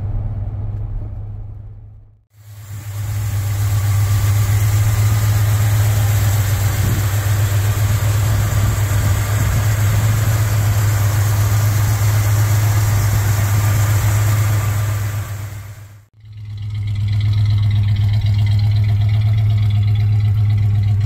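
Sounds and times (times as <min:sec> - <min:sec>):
car engine idling: 0:00.0 - 0:21.0
engine bay hiss: 0:02.3 - 0:16.1.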